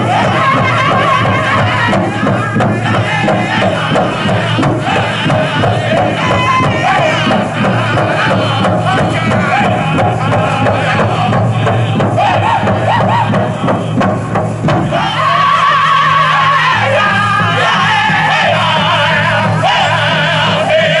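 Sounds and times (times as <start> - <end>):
big drum beat: 0.0 - 21.0
drum group singing: 0.0 - 21.0.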